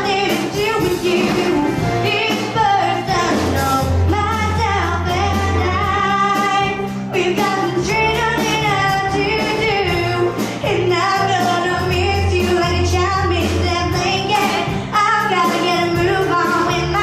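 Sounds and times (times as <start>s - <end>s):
band accompaniment: 0.0s - 17.0s
steady bass line: 0.0s - 17.0s
woman singing into microphone: 0.0s - 17.0s.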